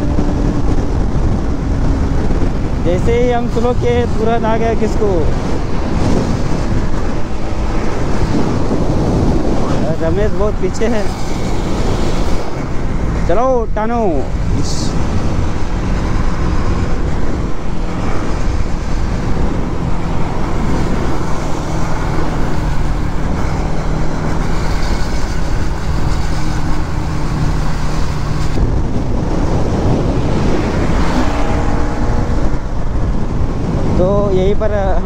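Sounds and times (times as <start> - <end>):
motorcycle engine drone: 0.0 - 35.0
wind rushing over microphone: 0.0 - 35.0.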